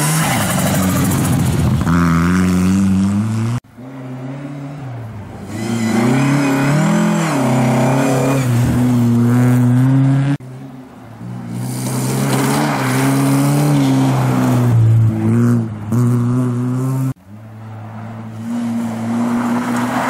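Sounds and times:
rally car engine changing gears: 0:00.0 - 0:04.6
rally car engine at high revs: 0:00.0 - 0:10.4.

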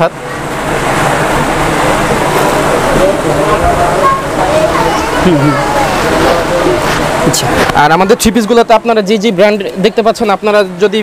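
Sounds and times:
loud steady rushing noise: 0:00.0 - 0:11.0
faint people talking: 0:02.0 - 0:11.0.

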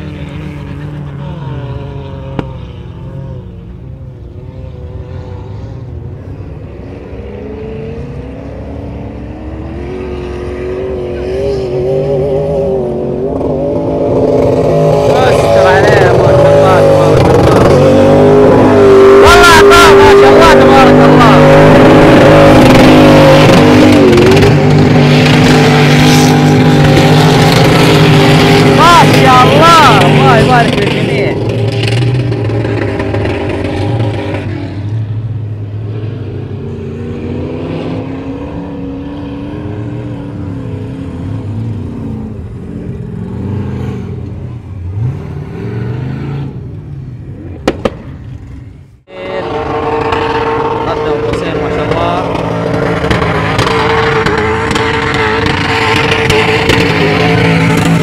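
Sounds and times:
vehicles driving on sand: 0:00.0 - 0:58.0
engine revving hard: 0:06.9 - 0:46.6, 0:49.2 - 0:58.0.

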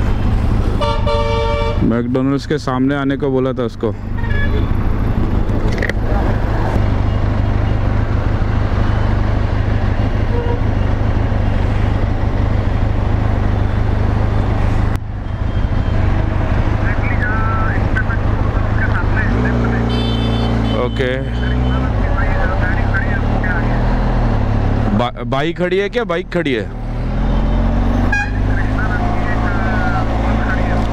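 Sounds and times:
road traffic passing: 0:00.0 - 0:30.9.

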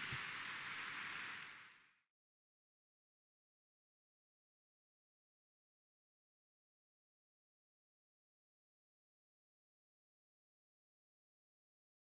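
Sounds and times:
faint audience applause: 0:00.0 - 0:02.0.

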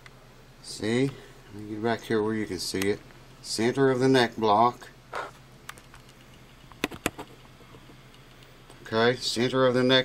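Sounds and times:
low steady hum: 0:00.0 - 0:10.0
sharp clicks: 0:05.7 - 0:07.2.

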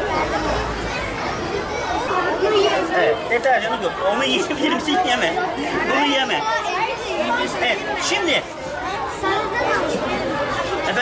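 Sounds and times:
children's voices: 0:00.0 - 0:11.0
crowd chatter: 0:00.0 - 0:11.0.

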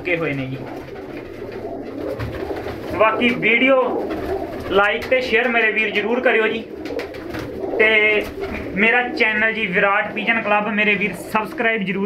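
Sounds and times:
pigeons cooing: 0:00.0 - 0:11.9.

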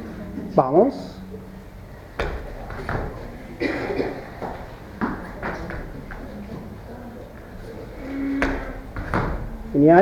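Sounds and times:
bare feet thumping on mats: 0:02.2 - 0:06.7, 0:07.4 - 0:10.0.

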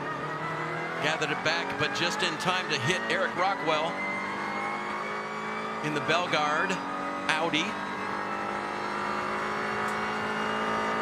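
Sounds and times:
high-revving race car engine: 0:00.0 - 0:11.0.

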